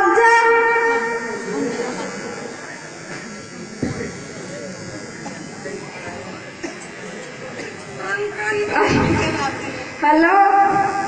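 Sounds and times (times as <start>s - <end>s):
room hubbub: 0.0s - 11.0s
thump: 3.8s - 4.1s, 8.8s - 9.4s.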